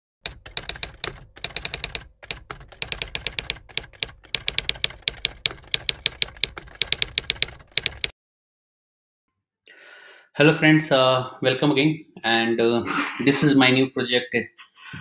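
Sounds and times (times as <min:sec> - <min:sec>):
typewriter key clicks: 0:00.2 - 0:08.1.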